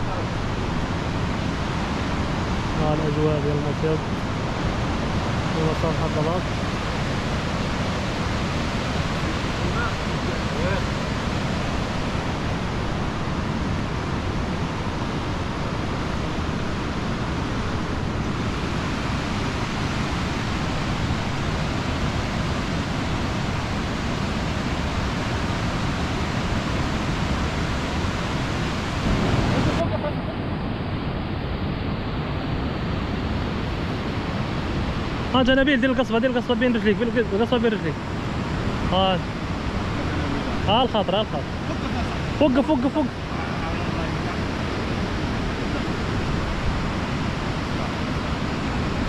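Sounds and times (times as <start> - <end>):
wind on microphone: 0.0 - 35.4, 37.7 - 49.0.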